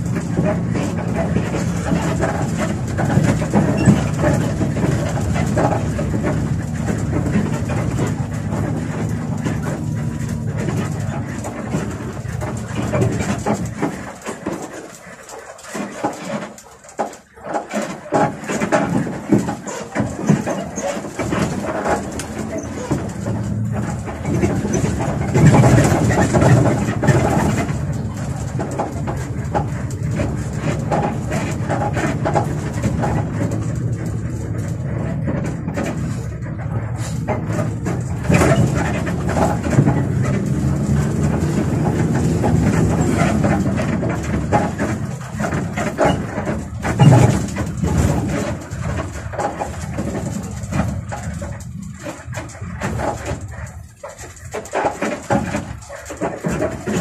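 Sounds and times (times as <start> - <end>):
bus engine running: 0.0 - 57.0
bus jolt: 0.0 - 57.0
rattles and squeaks from cab: 0.0 - 57.0
road noise: 0.0 - 57.0.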